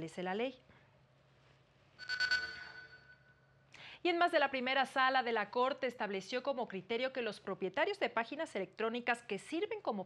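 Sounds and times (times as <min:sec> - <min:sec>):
bright ringing tone: 0:02.0 - 0:03.6.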